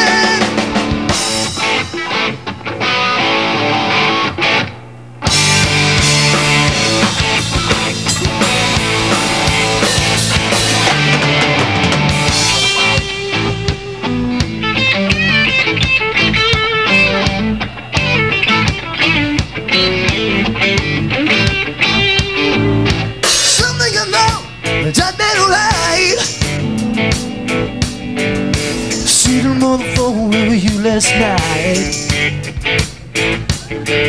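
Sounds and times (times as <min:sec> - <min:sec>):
drum kit: 0:00.0 - 0:03.5, 0:05.2 - 0:34.0
bass guitar: 0:00.0 - 0:34.0
electric guitars: 0:00.0 - 0:34.0.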